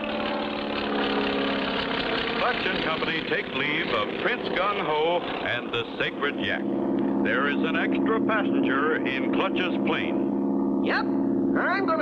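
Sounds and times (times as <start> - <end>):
propeller plane engine running: 0.0 - 12.0.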